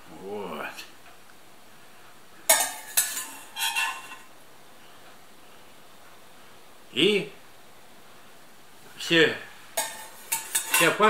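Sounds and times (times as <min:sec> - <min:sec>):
sharp metallic clanks: 0:02.5 - 0:04.2, 0:09.8 - 0:11.0
metal spatula scraping a pot: 0:02.5 - 0:04.3, 0:09.8 - 0:11.0.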